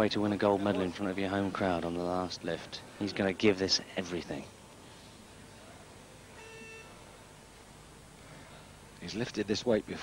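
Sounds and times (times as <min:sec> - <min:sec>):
hushed sports hall ambience: 0:00.0 - 0:10.0
short pitched tone: 0:06.4 - 0:07.0.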